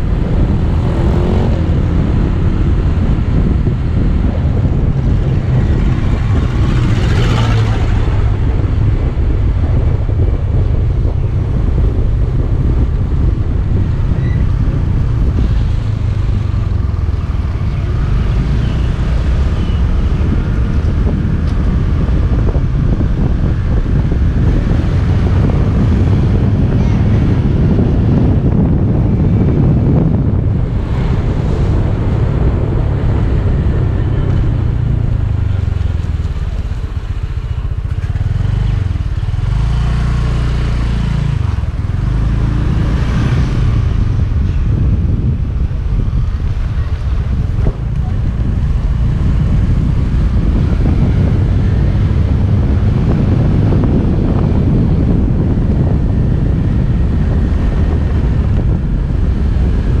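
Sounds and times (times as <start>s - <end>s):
wind buffeting microphone: 0.0s - 60.0s.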